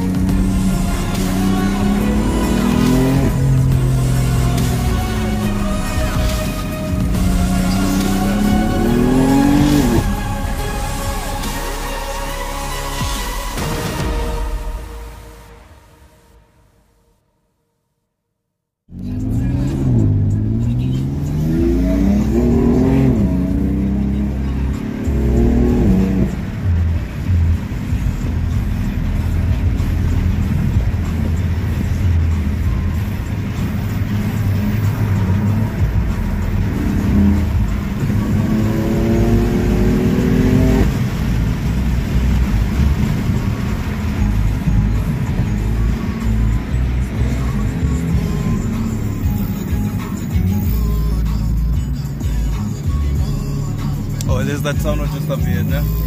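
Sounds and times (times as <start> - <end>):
car engine accelerating hard: 0.0 - 14.5, 18.9 - 56.0
heavy low rumble: 0.0 - 15.6, 18.9 - 56.0.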